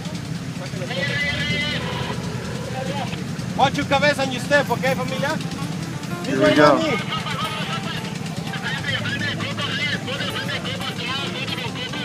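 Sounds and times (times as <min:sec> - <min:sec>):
engine idling rumble: 0:00.0 - 0:12.0
brief high held tone: 0:06.1 - 0:07.0.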